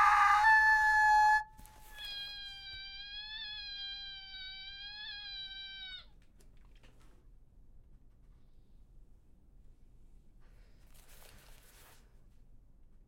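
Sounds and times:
woman screaming: 0.0 - 1.5.

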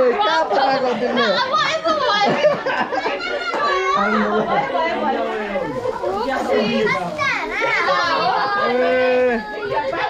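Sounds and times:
crowd of voices talking: 0.0 - 10.0.

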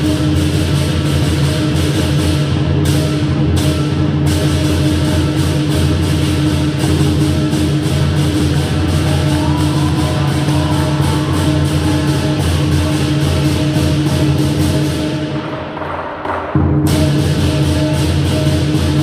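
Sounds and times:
big drum booming: 0.0 - 19.0
cymbals crashing: 0.0 - 19.0.

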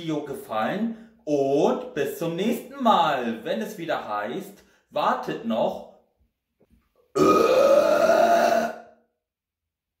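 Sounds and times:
man burping: 7.1 - 9.0.

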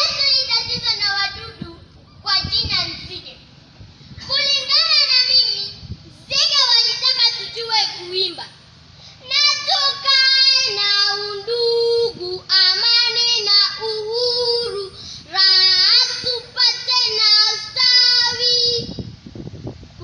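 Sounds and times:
girl singing unaccompanied: 0.0 - 3.4, 4.2 - 8.5, 9.1 - 19.1.

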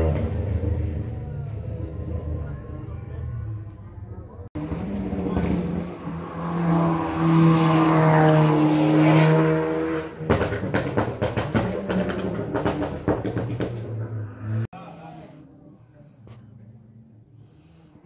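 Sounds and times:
rally car engine revving: 0.0 - 15.2
exhaust pops and crackles: 10.2 - 14.0.

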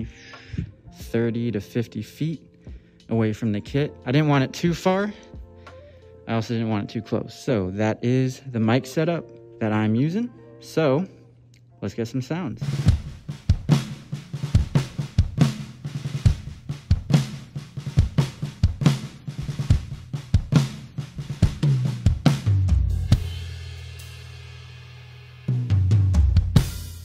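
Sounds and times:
drum kit playing groove: 0.0 - 5.9, 12.6 - 27.0.

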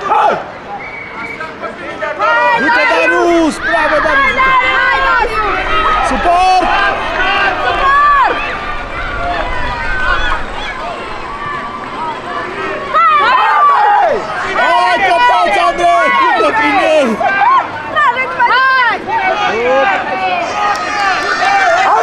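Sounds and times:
adult voices: 0.0 - 22.0
children shouting: 2.0 - 22.0.

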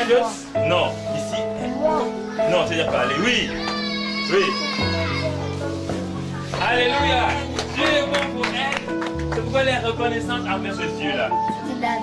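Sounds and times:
background music with held notes: 0.0 - 12.0
children chattering: 1.6 - 7.2.

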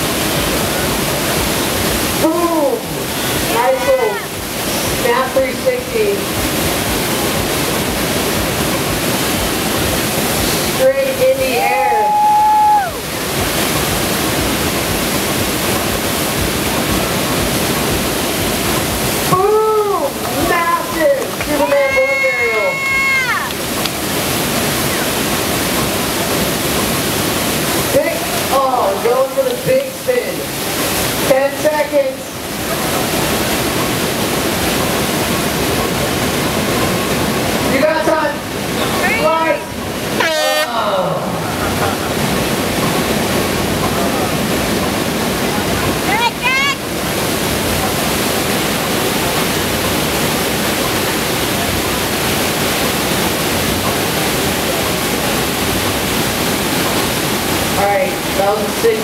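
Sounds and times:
rushing pumped water: 0.0 - 59.0
people calling out: 3.4 - 4.4, 11.6 - 13.1, 21.4 - 23.5, 39.0 - 41.3.

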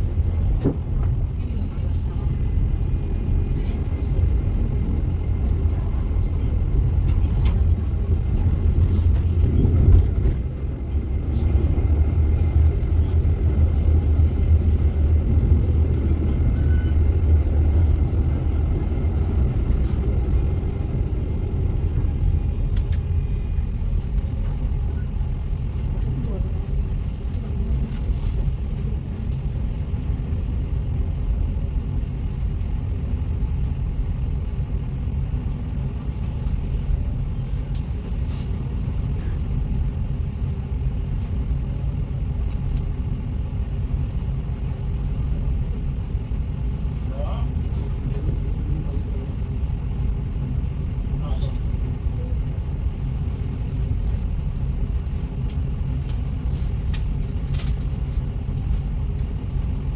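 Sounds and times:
tram running on tracks: 0.0 - 59.9.

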